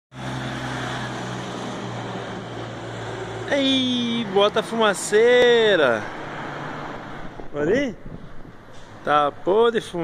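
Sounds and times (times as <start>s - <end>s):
diesel truck driving past: 0.1s - 10.0s.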